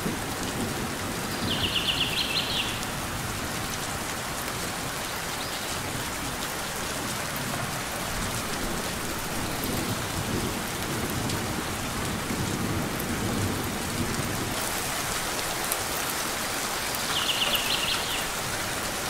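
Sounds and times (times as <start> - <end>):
rain falling on leaves: 0.0 - 19.0.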